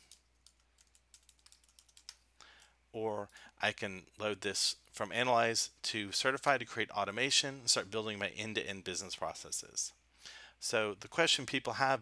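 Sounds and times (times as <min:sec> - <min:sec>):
keyboard typing: 0:00.0 - 0:02.7.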